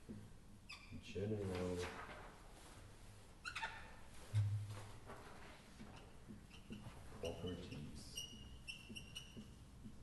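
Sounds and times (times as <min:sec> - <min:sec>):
whiteboard marker squeaking: 0:00.7 - 0:01.0, 0:03.4 - 0:04.0, 0:05.8 - 0:10.0.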